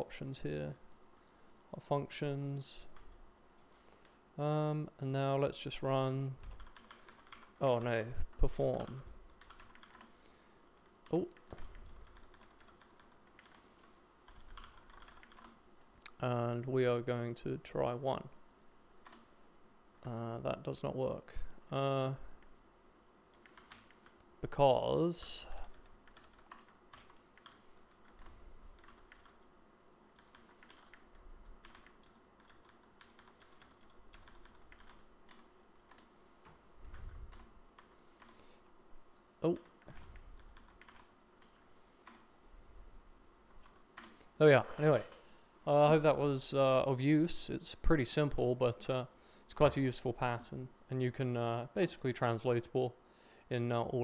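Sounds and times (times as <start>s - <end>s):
faint keyboard typing: 2.8s - 4.2s, 6.3s - 16.3s, 19.0s - 19.4s, 23.3s - 24.3s, 25.4s - 29.5s, 30.1s - 42.3s, 43.5s - 44.4s.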